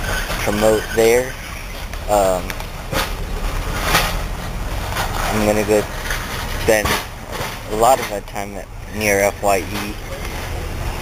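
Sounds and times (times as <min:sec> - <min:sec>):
steady low rumble: 0:01.2 - 0:11.0.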